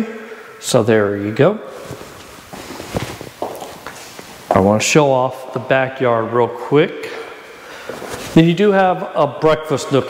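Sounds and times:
soft footsteps on vinyl floor: 1.7 - 4.7.

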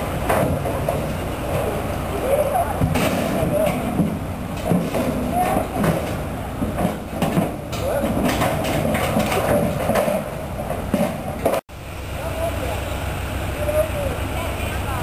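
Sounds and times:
cattle hooves clattering on metal: 0.2 - 11.6
indistinct voices: 0.3 - 15.0.

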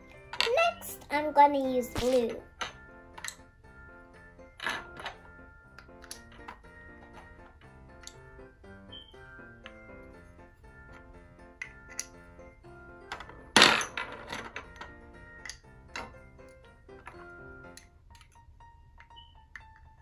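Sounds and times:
light background music: 0.0 - 20.0
plastic pegs clicking on tabletop: 2.6 - 3.5, 5.8 - 6.6, 7.2 - 8.2, 11.5 - 12.2, 13.1 - 16.2.

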